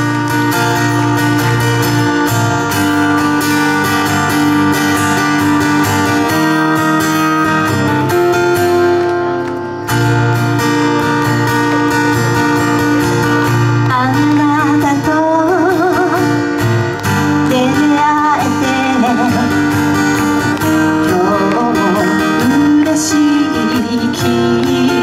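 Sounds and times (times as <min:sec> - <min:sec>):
acoustic guitar strumming chords: 0:00.0 - 0:25.0.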